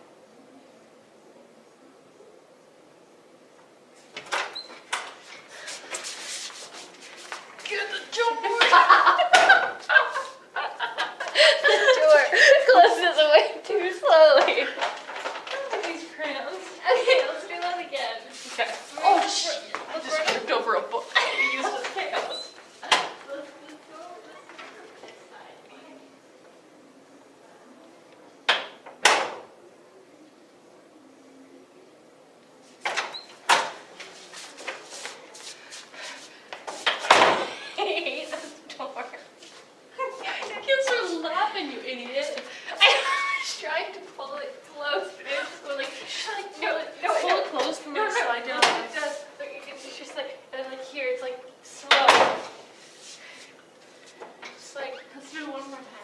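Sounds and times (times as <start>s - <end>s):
clothing rustling: 5.1s - 8.5s
person speaking: 7.6s - 14.8s.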